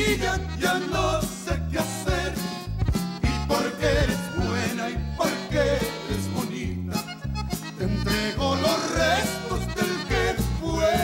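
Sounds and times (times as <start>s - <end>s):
man singing: 0.0s - 2.6s, 3.3s - 7.2s, 7.8s - 11.0s
accordion: 0.0s - 11.0s
guitar: 0.0s - 11.0s
walking bass line: 0.0s - 11.0s
drum kit steady beat: 1.9s - 5.4s.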